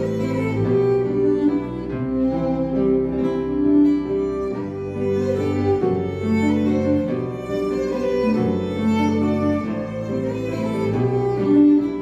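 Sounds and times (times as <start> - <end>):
double bass: 0.0 - 12.0
piano: 0.0 - 12.0
violin melody: 0.0 - 12.0.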